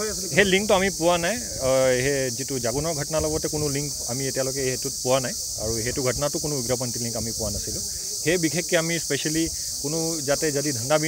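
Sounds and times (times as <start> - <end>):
insect chorus: 0.0 - 11.0
man speaking: 0.0 - 11.0.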